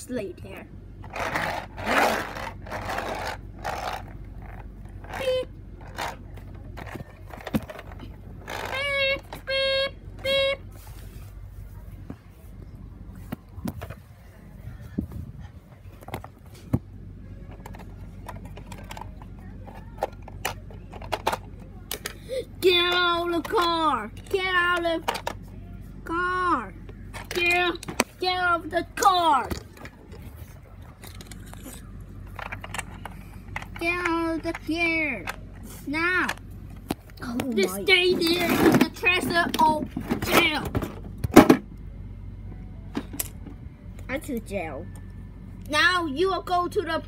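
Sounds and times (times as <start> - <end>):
plastic toys scraping on tiles: 1.0 - 6.2, 38.0 - 39.4.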